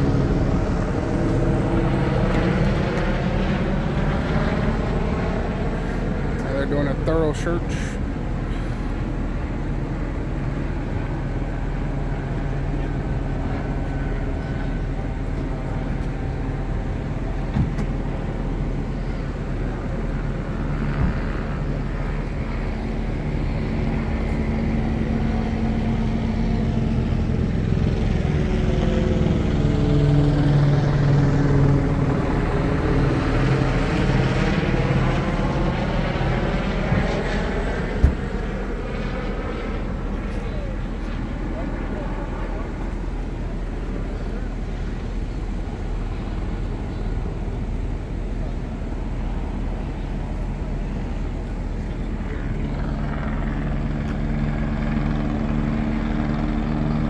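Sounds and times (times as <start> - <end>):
helicopter rotor drone: 0.0 - 57.0.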